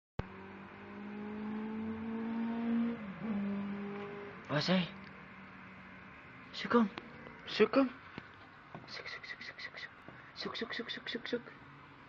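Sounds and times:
motor hum rising in pitch: 0.2 - 6.4.

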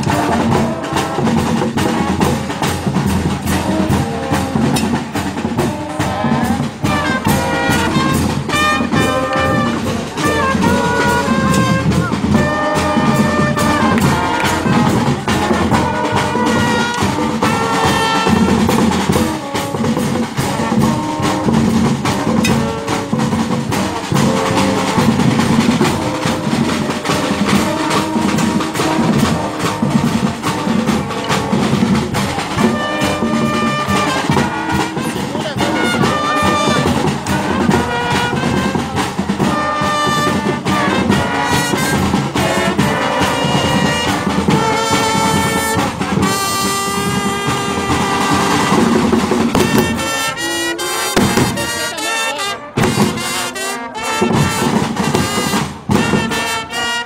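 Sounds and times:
bass and snare drums beating: 0.0 - 57.0
brass playing tune: 0.0 - 57.0
marching band playing: 0.0 - 57.0.

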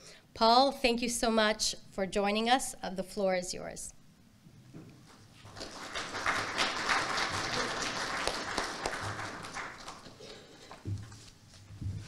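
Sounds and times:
audience applauding: 5.4 - 10.8.

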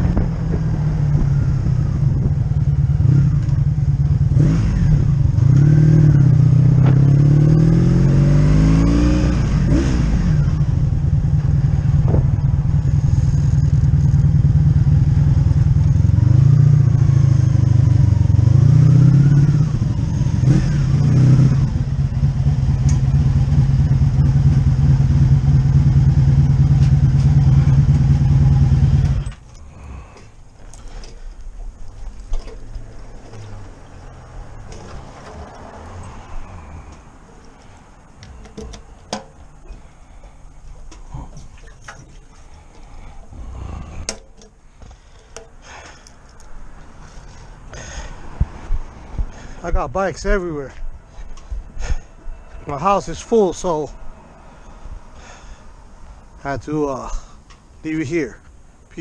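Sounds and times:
motorcycle engine revving and idling: 0.0 - 38.7.

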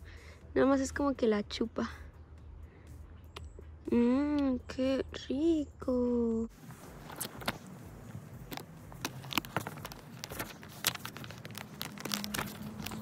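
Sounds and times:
rustling and crinkling: 6.5 - 13.0.

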